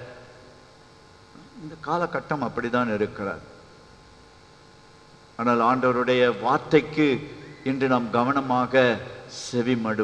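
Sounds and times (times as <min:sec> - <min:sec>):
faint electrical hum: 0:00.0 - 0:10.0
man speaking over pa system: 0:05.4 - 0:10.0.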